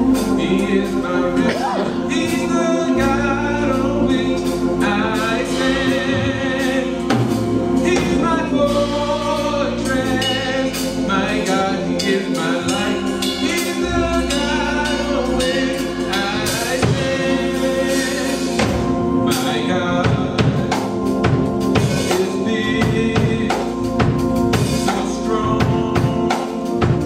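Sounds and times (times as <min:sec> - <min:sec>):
women singing gospel: 0:00.0 - 0:21.0
sustained keyboard chords: 0:00.0 - 0:27.0.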